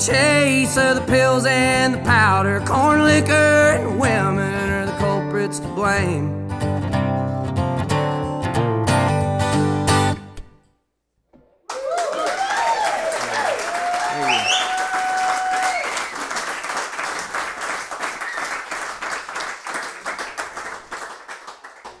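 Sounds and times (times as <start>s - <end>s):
audience applause: 11.6s - 22.0s
whoops and cheering: 11.7s - 16.3s.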